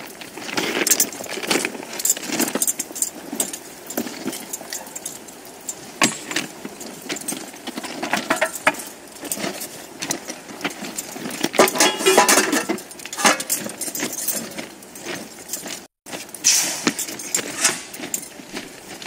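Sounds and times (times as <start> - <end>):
metal tools clinking and rattling: 0.4 - 19.0
burners hissing: 16.2 - 18.0.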